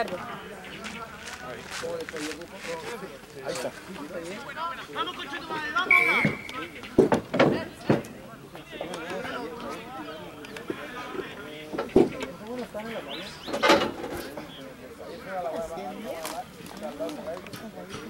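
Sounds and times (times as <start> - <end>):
voices talking and calling out: 0.0 - 18.0
loud shouts: 4.9 - 6.8
referee whistle blast: 5.9 - 6.8.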